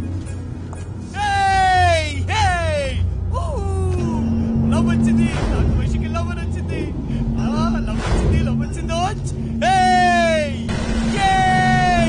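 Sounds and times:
low music drone: 0:00.0 - 0:12.0
man calling out: 0:01.1 - 0:05.2, 0:08.8 - 0:12.0.

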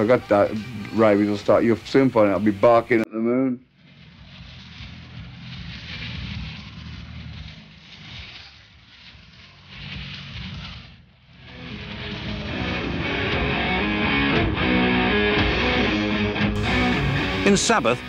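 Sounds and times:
guitar music: 0:11.6 - 0:18.0
live rock concert noise: 0:11.6 - 0:18.0.

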